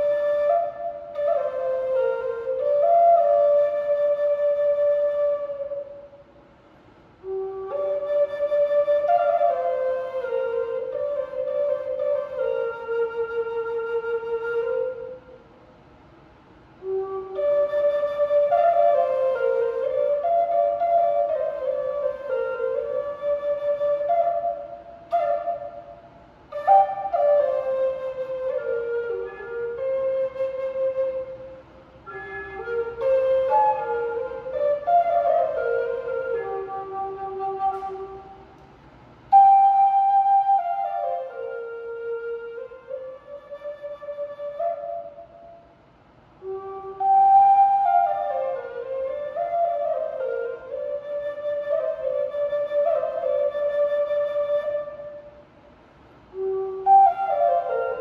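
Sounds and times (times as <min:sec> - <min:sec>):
flute playing slow melody: 0:00.0 - 0:06.4, 0:07.2 - 0:15.5, 0:16.7 - 0:38.6, 0:39.3 - 0:45.8, 0:46.4 - 0:55.5, 0:56.2 - 0:58.0.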